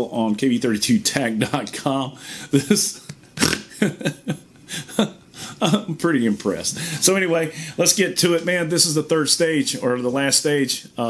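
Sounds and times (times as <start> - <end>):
man chuckling: 2.4 - 6.1.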